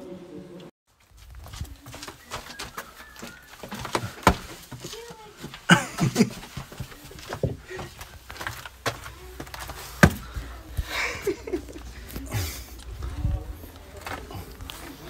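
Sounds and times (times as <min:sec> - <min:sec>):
feet and hands scuffing on stone: 0:00.9 - 0:10.9.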